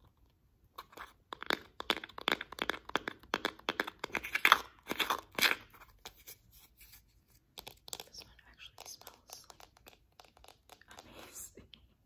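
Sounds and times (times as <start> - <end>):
nails tapping on plastic tubs: 1.3 - 4.2.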